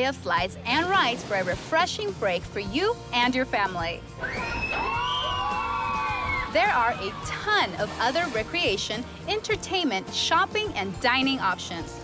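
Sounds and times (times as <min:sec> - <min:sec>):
background music: 0:00.0 - 0:12.0
riders screaming together: 0:04.3 - 0:07.4.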